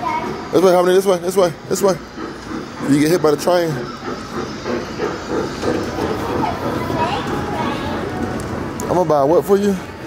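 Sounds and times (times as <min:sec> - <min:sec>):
kiddie train rolling: 0:00.0 - 0:10.0
recorded steam locomotive chugging: 0:00.0 - 0:10.0.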